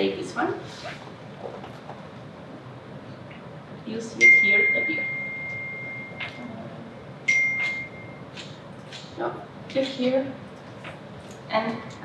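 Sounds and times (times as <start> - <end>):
high ringing ping: 4.2 - 6.5, 7.2 - 8.4.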